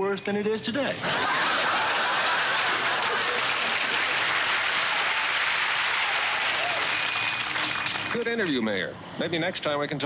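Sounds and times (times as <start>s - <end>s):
audience laughing: 1.0s - 5.5s
audience applauding: 1.2s - 8.2s.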